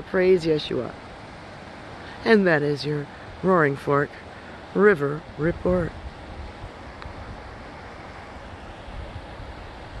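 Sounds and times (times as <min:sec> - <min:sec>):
river rushing over rocks: 0:00.0 - 0:10.0
wind on microphone: 0:05.2 - 0:10.0.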